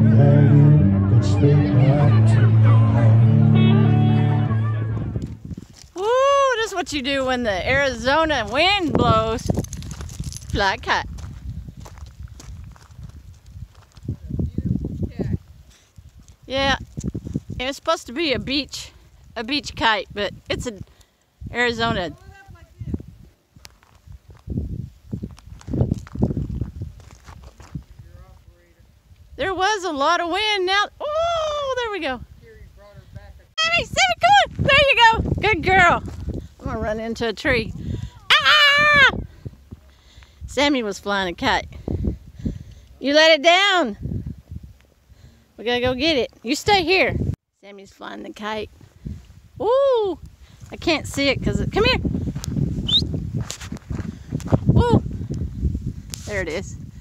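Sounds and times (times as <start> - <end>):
wind buffeting microphone: 4.9 - 47.4, 48.6 - 57.0
footsteps on gravel: 8.2 - 14.2, 25.1 - 28.0, 34.4 - 36.8, 52.3 - 54.8.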